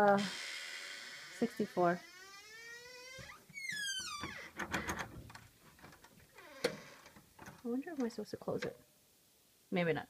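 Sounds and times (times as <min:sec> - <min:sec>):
door hinges creaking: 0:00.0 - 0:08.1.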